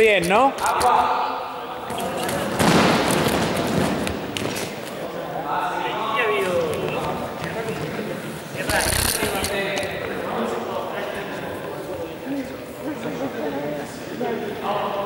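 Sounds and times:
voices: 0.0s - 15.0s.

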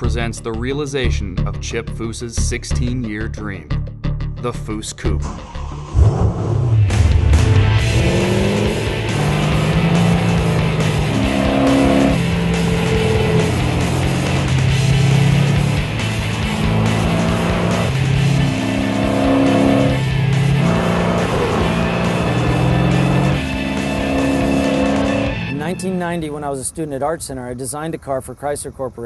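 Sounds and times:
background music with held chords: 0.0s - 26.5s
car engine revving hard: 5.7s - 25.9s.

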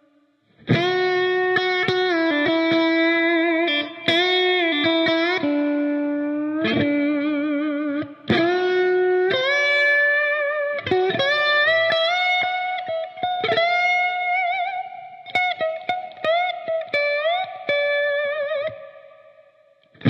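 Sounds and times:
electric lap steel guitar melody: 0.0s - 20.0s.

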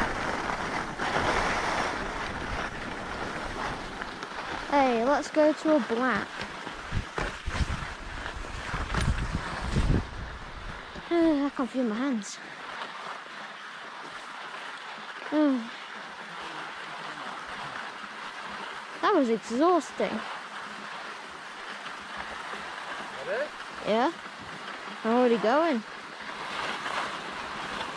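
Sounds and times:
wind buffeting microphone: 0.0s - 11.6s
skis sliding over snow: 0.0s - 27.9s.

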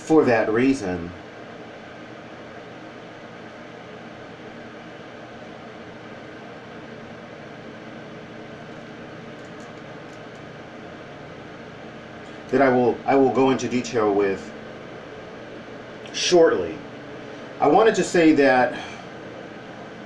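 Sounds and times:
low hum: 0.0s - 20.0s
room-tone hiss: 0.0s - 20.0s
faint clicks: 9.3s - 10.5s.

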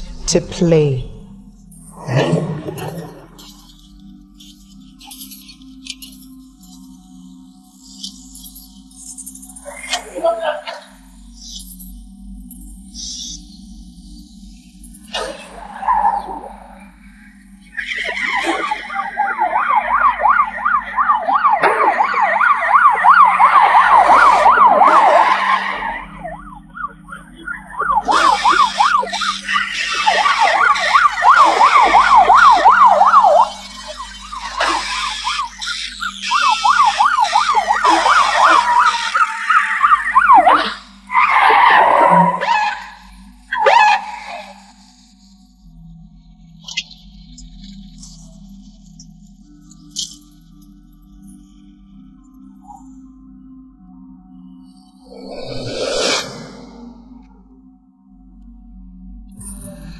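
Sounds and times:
police siren yelping: 17.9s - 44.6s.

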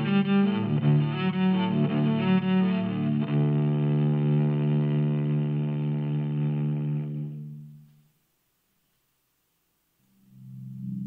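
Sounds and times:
electric cello bowed: 0.0s - 8.0s.

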